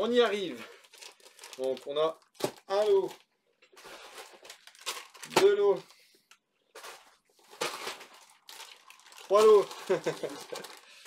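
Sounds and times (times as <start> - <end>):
plastic packaging crinkling: 0.1 - 5.9, 6.7 - 11.0.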